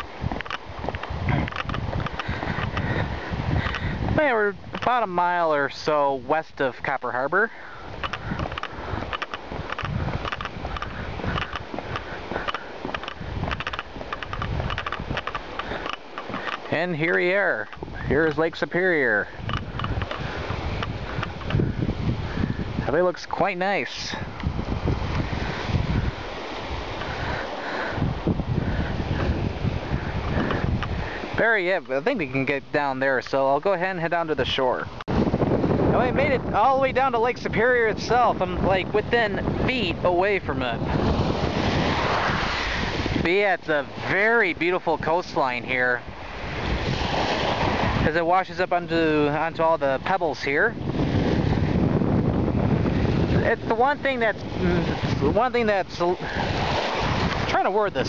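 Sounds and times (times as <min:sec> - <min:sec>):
footsteps on walkway: 0:00.0 - 0:04.9, 0:07.6 - 0:18.4, 0:19.2 - 0:22.4, 0:24.3 - 0:31.9
breeze buffeting microphone: 0:00.0 - 0:58.0.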